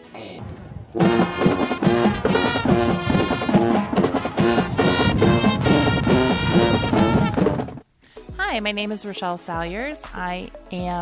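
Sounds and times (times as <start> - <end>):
marching band brass: 0.9 - 7.8
cymbals crashing: 1.0 - 7.4
snare drums: 1.0 - 7.8.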